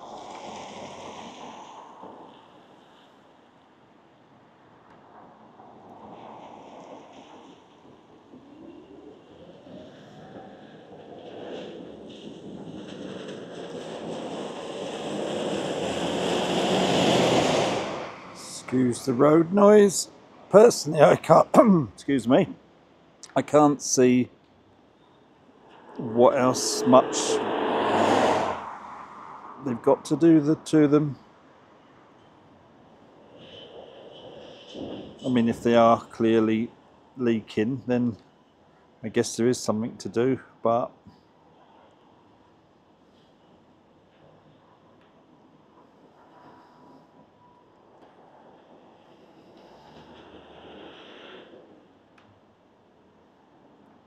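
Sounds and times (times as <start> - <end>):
faint road traffic: 0.0 - 54.0
road vehicle passing by: 8.7 - 21.4, 25.6 - 32.2, 48.4 - 51.9.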